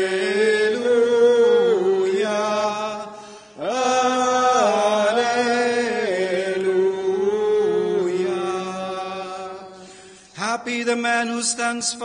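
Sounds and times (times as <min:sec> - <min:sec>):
person chanting: 0:00.0 - 0:09.8, 0:10.4 - 0:12.0
breath: 0:03.1 - 0:03.6, 0:09.8 - 0:10.4.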